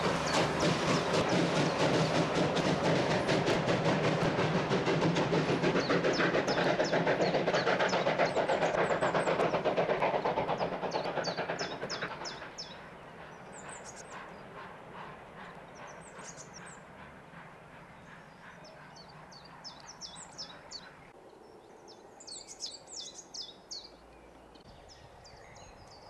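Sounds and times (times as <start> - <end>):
train wheels clattering over rail joints: 0.0 - 17.5
birds chirping: 0.0 - 26.0.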